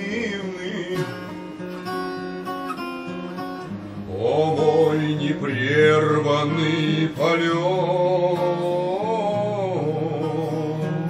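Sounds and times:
man singing: 0.0 - 2.0, 4.0 - 11.0.

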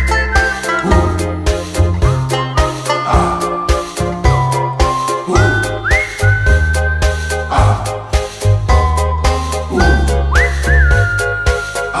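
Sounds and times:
high whistled melody: 0.0 - 1.9, 2.9 - 8.1, 8.7 - 12.0
bass and drums: 0.0 - 12.0.

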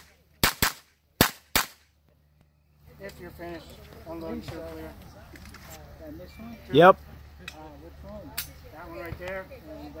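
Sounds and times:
sharp crack: 0.0 - 1.9
men talking: 2.9 - 10.0.

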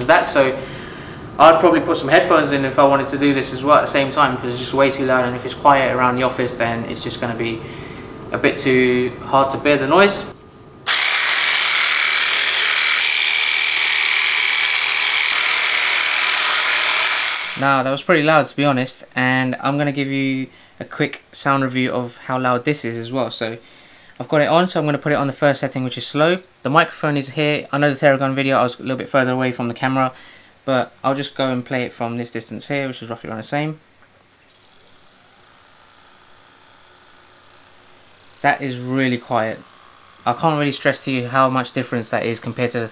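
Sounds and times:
massage gun buzzing: 10.8 - 17.6, 34.4 - 42.9.

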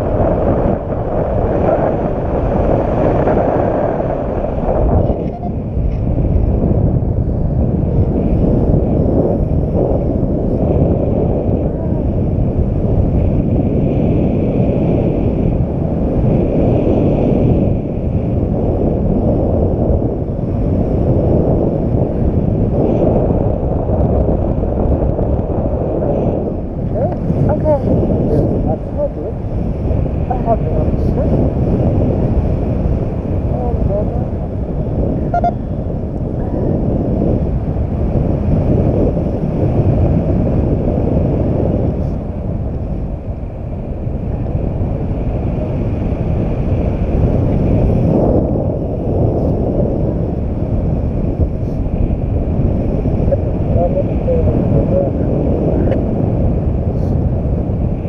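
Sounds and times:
wind roaring over microphone: 0.0 - 58.0.

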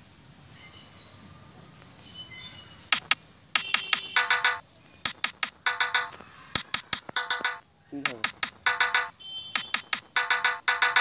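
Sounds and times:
pitched synth stabs: 2.9 - 11.0.

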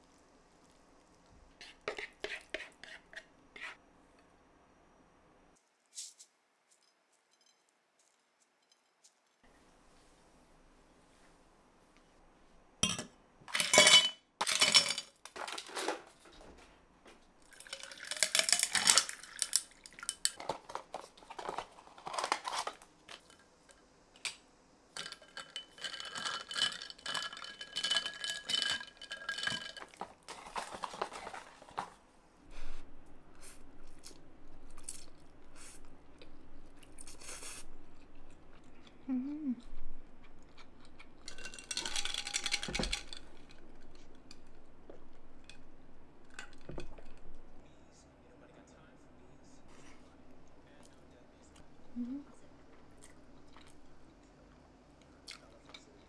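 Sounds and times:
dishes and utensils clattering: 12.8 - 16.1, 25.0 - 31.9, 41.2 - 44.4
ice clinking in a glass: 25.0 - 30.0, 41.3 - 43.2.

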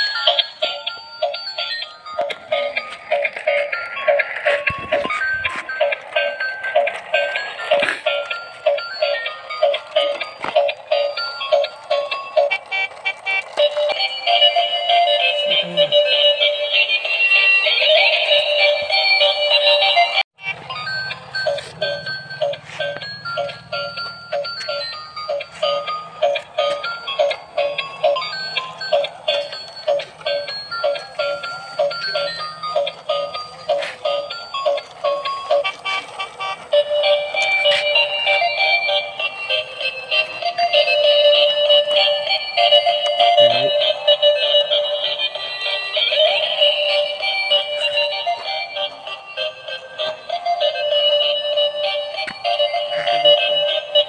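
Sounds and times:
electronic toy tune: 0.0 - 54.0.

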